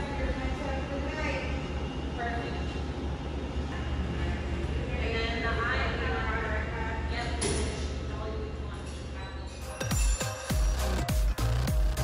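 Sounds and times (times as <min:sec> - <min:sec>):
low machinery hum: 0:00.0 - 0:09.6.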